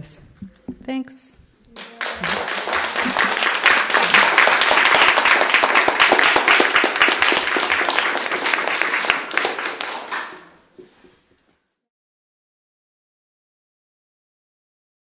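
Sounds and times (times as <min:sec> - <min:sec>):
small audience applauding: 0:01.7 - 0:10.9.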